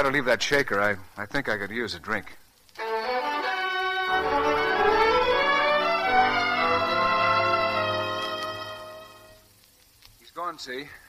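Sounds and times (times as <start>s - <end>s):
orchestral strings music: 2.8s - 9.5s.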